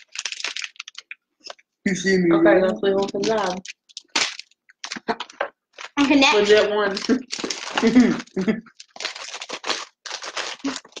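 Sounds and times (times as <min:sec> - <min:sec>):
plastic packaging crinkling: 0:00.0 - 0:01.6, 0:02.8 - 0:11.0.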